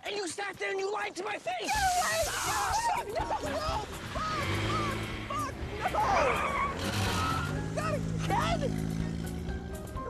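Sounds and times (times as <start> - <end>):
person crying out: 1.7 - 8.0
car engine humming: 2.7 - 10.0.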